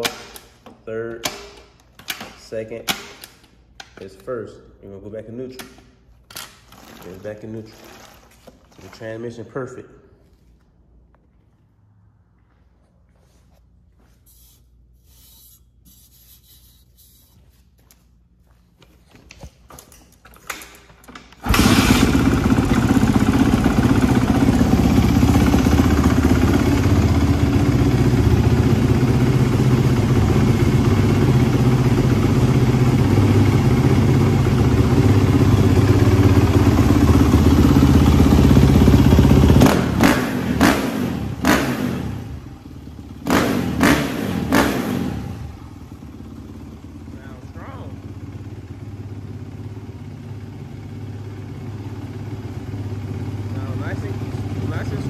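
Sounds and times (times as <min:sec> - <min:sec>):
motorcycle engine running: 0:21.5 - 0:55.0.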